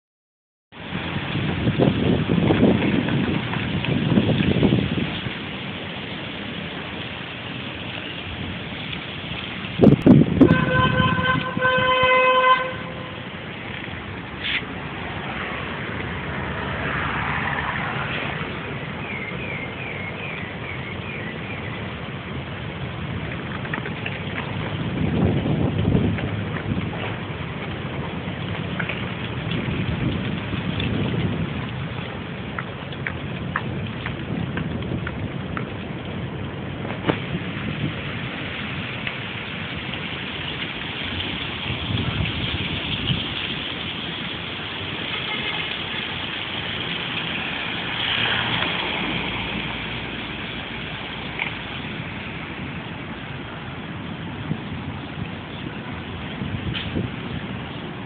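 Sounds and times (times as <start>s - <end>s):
low rumbles: 0.7s - 58.0s
rain hissing on concrete: 0.7s - 58.0s
rain drop clicks: 0.8s - 11.6s, 12.6s - 58.0s.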